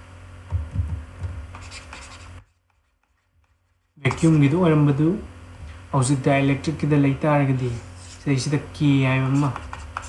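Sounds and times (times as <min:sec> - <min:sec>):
low electrical hum: 0:00.0 - 0:10.0
stylus strokes on tablet: 0:01.5 - 0:04.5, 0:07.6 - 0:08.5, 0:09.2 - 0:10.0.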